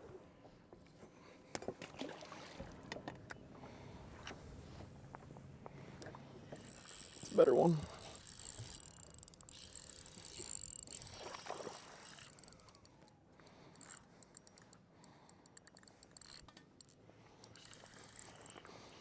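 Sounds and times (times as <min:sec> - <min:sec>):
fishing reel ticking: 0:06.0 - 0:19.0.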